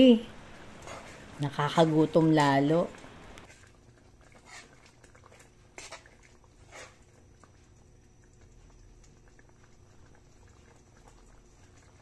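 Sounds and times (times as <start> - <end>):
sauce simmering: 0.0 - 12.0.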